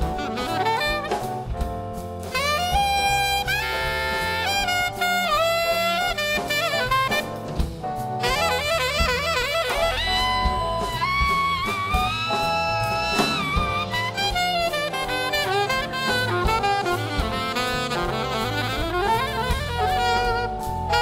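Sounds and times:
alto saxophone jazz solo: 0.0 - 21.0
big band accompaniment: 0.0 - 21.0.

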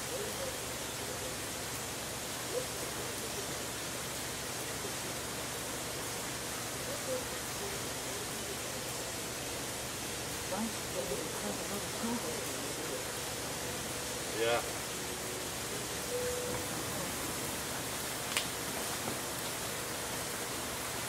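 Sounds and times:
outdoor background hiss: 0.0 - 21.0.

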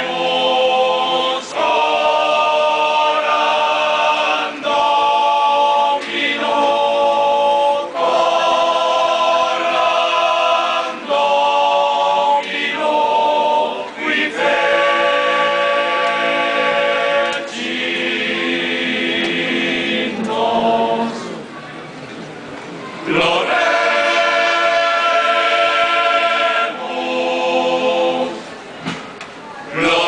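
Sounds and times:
men's choir singing a hymn: 0.0 - 21.5, 23.0 - 28.6, 29.7 - 30.0.

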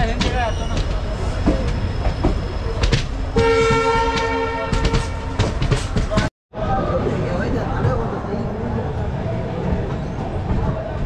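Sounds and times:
train clattering on rails: 0.0 - 6.3
train horn blast: 3.4 - 5.5.

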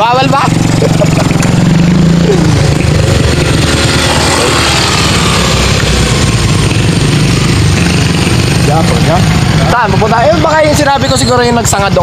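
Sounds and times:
scooter engine idling: 0.0 - 12.0.

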